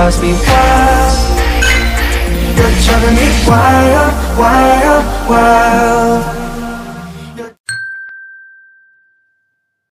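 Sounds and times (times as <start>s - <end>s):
bell-like ding: 1.6s - 2.2s, 7.7s - 9.8s.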